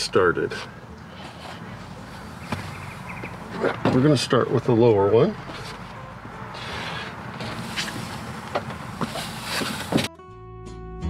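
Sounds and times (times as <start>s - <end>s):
vinyl stair tread knocks and rustles: 7.3s - 10.1s
background music: 9.7s - 11.0s.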